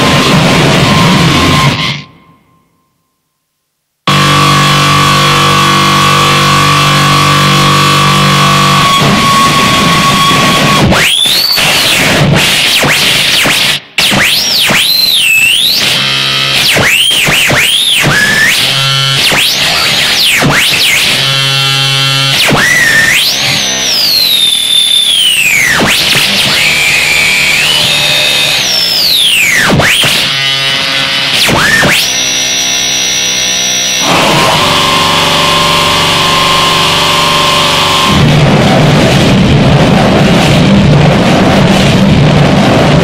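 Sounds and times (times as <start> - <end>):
buzzing drone: 4.1 - 43.0.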